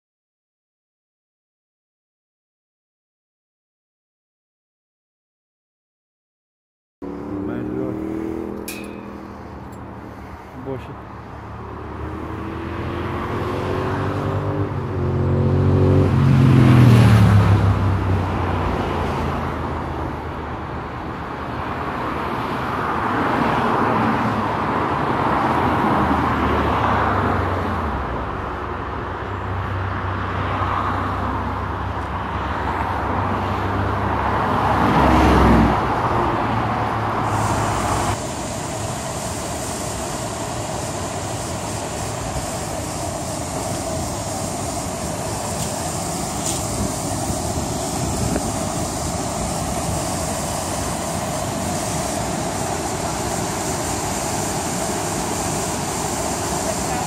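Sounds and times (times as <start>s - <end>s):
waterfall rushing: 37.0s - 57.0s.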